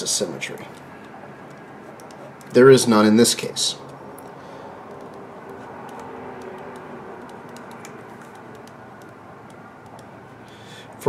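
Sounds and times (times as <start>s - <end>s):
background hiss and hum: 0.0s - 11.0s
pen scratching on paper: 5.0s - 9.2s.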